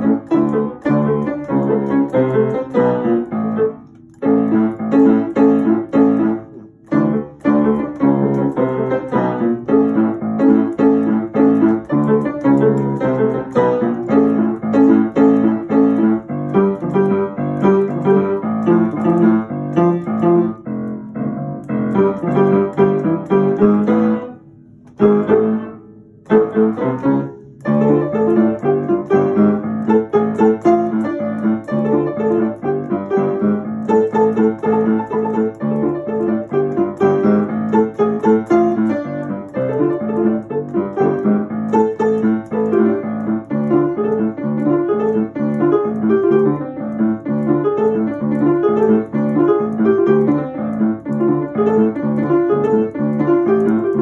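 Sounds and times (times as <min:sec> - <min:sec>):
upright piano playing chords: 0:00.0 - 0:54.0.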